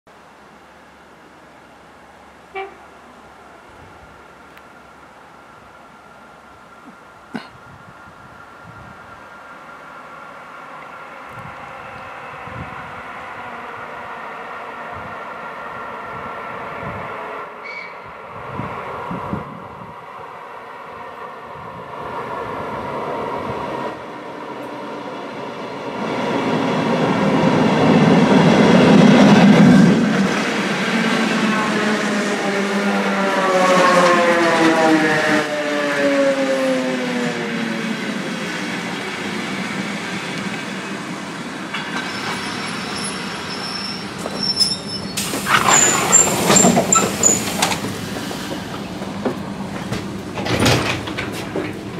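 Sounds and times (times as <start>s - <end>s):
train wheels on rails: 21.9s - 51.9s
train motor whine: 41.7s - 51.9s.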